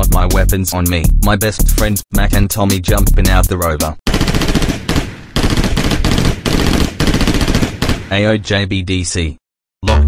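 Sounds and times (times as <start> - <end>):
machine-gun fire: 4.1 - 8.3.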